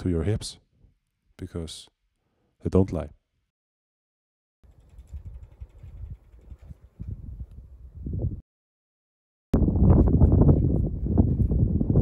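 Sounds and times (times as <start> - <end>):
wind buffeting microphone: 4.7 - 8.4, 9.6 - 12.0.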